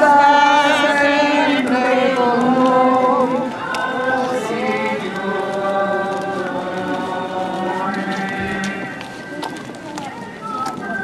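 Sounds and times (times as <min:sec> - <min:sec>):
group singing a hymn: 0:00.0 - 0:09.2.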